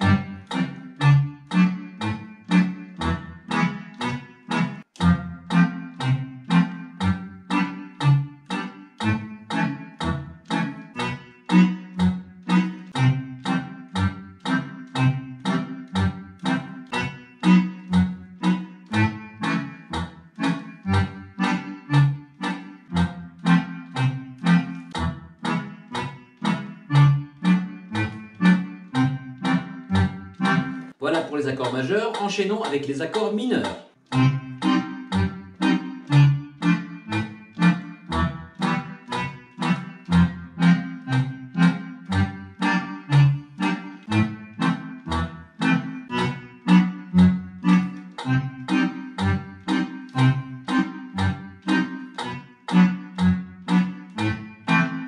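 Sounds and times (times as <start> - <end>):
accordion bass playing march pattern: 0.0 - 55.0.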